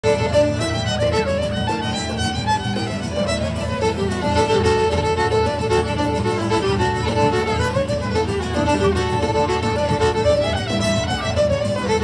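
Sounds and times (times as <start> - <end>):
fiddle melody: 0.0 - 12.0
live band music: 0.0 - 12.0.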